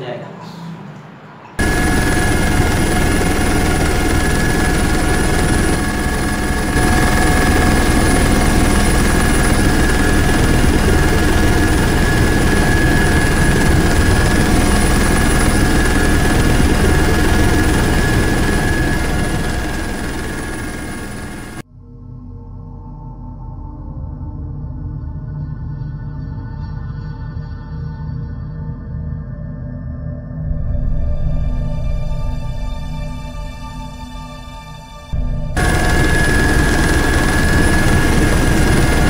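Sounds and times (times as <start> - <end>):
helicopter rotor and engine noise: 1.6 - 21.6, 35.2 - 39.0.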